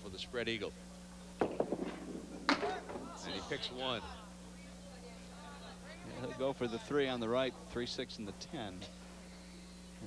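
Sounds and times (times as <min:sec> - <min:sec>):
ball hitting pins: 0:01.4 - 0:03.2
bowling ball rolling: 0:01.4 - 0:03.2.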